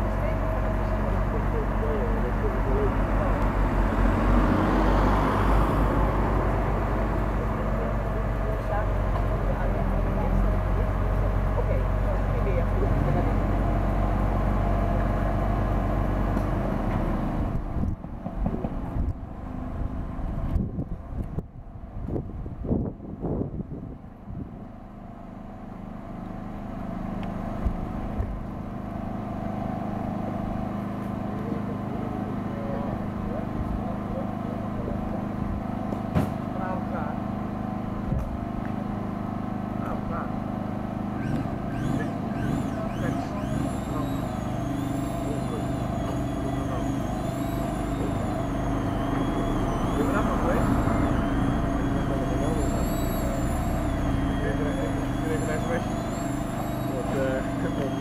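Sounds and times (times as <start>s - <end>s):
crane diesel engine running: 0.0s - 58.0s
high wavering whine: 36.6s - 58.0s.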